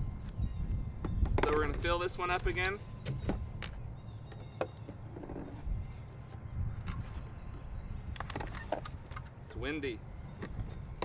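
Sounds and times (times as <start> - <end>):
wind buffeting microphone: 0.0 - 4.2, 5.0 - 11.0.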